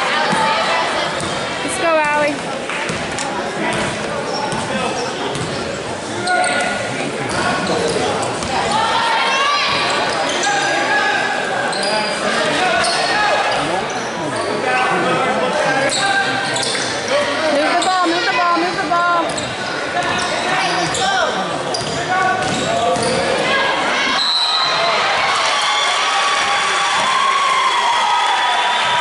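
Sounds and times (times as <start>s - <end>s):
shoes squeaking: 15.9s - 23.4s.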